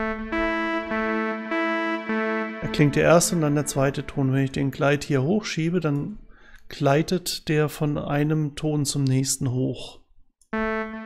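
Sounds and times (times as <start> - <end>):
synthesizer notes: 0.0 - 5.8, 10.5 - 11.0.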